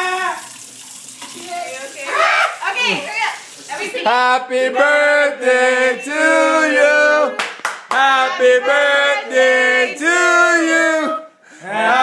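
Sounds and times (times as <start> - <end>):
high-pitched voices talking and exclaiming: 1.4 - 4.2.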